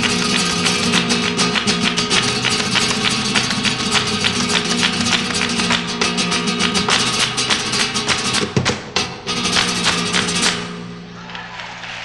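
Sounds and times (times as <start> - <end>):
flamenco guitar playing: 0.0 - 11.2.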